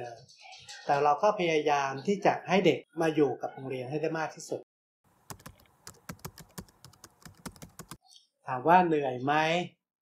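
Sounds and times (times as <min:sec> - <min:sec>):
keyboard typing clicks: 0:05.3 - 0:08.0.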